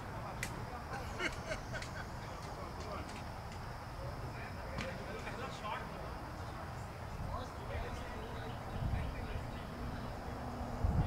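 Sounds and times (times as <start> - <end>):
wind rumble on microphone: 8.6 - 11.0.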